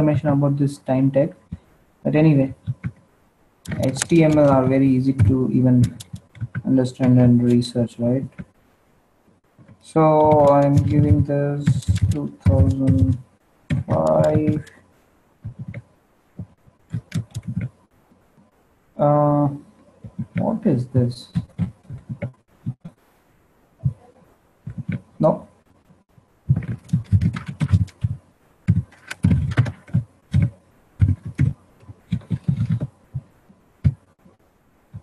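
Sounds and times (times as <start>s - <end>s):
computer keyboard keystrokes: 3.7s - 4.6s, 5.2s - 6.6s, 10.2s - 14.8s, 16.9s - 17.7s, 26.5s - 32.9s.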